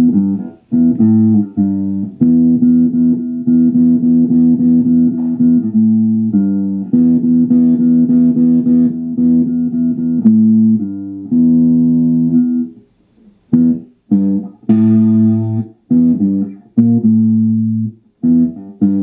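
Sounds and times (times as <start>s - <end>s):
electric guitar riff: 0.0s - 12.9s, 13.5s - 19.0s.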